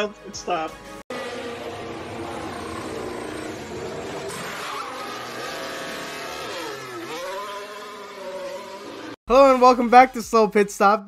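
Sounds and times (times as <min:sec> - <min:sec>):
high-revving race car engine: 0:01.1 - 0:09.2.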